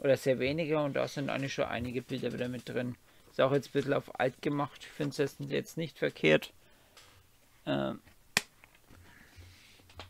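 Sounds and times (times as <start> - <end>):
rustling of pages turned: 1.1 - 5.4.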